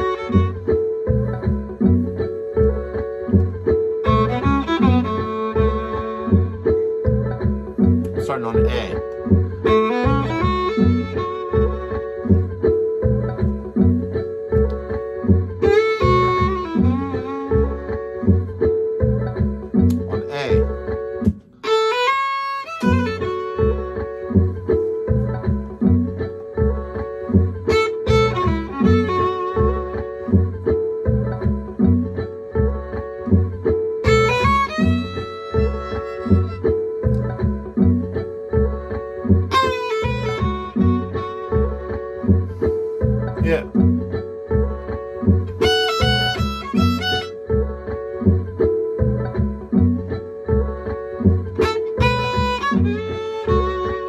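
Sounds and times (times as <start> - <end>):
violin playing blues phrases: 0.0 - 1.0, 3.9 - 7.0, 9.6 - 12.4, 15.6 - 18.2, 21.6 - 24.2, 27.7 - 30.1, 34.0 - 37.0, 39.5 - 42.2, 45.6 - 47.4, 51.6 - 54.0
guitar backing groove: 0.0 - 54.0.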